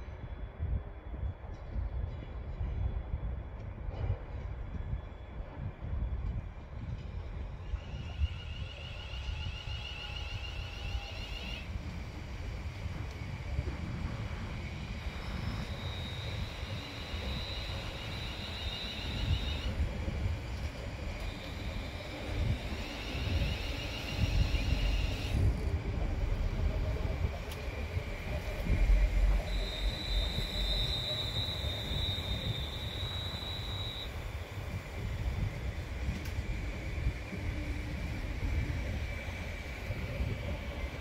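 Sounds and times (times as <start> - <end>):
train wheels rumbling on rail: 0.0 - 41.0
high-pitched train tones: 7.4 - 41.0.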